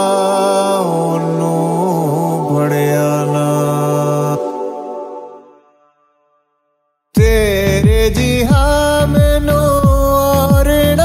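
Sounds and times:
man singing long note: 0.0 - 5.7, 7.2 - 11.0
sustained musical accompaniment: 0.0 - 6.5.

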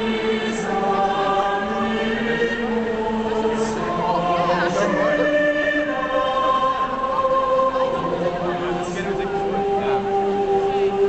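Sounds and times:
orchestra and choir chords: 0.0 - 11.0.

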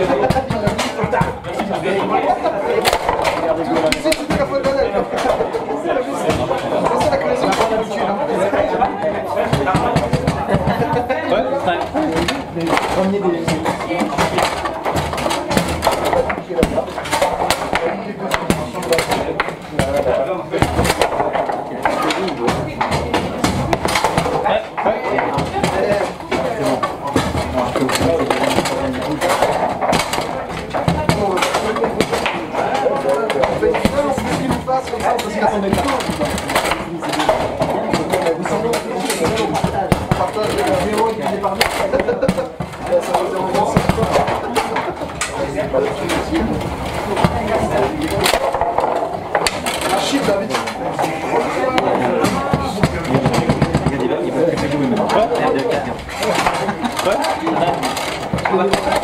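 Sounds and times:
background chatter: 0.0 - 59.0
table football ball and rods clacking: 0.0 - 59.0.

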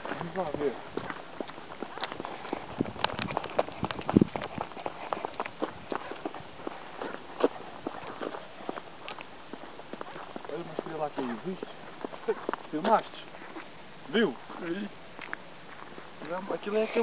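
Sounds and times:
footsteps of people walking: 0.0 - 17.0.

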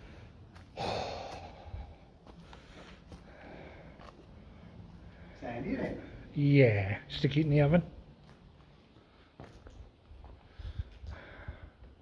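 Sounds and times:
footsteps on loose rubble: 0.4 - 4.6, 8.2 - 11.1
breathy exhale: 0.8 - 4.0.

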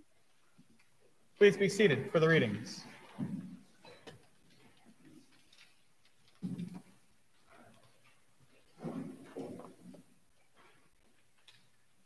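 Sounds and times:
faint rustles and ticks: 2.9 - 8.8, 9.7 - 12.0.

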